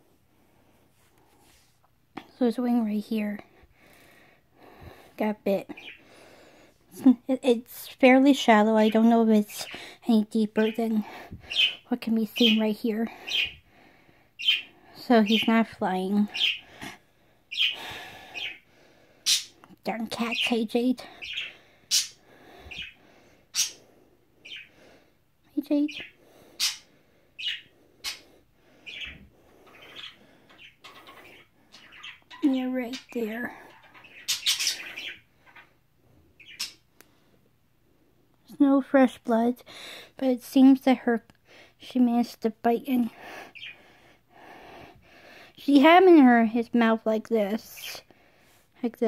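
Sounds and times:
soft breathing: 0.0 - 1.9, 3.4 - 7.0, 11.0 - 11.9, 13.0 - 15.2, 21.0 - 25.4, 26.0 - 32.2, 35.0 - 38.4, 43.0 - 45.6, 48.0 - 48.8
budgerigar chirping: 14.4 - 14.7, 17.5 - 17.8, 19.3 - 19.5, 21.2 - 23.8, 24.4 - 24.7, 25.9 - 28.3, 28.9 - 33.1, 33.7 - 35.7, 36.4 - 36.8.

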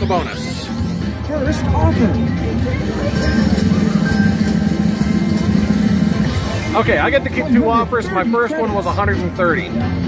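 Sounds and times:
slot machine bonus music: 2.8 - 9.1.

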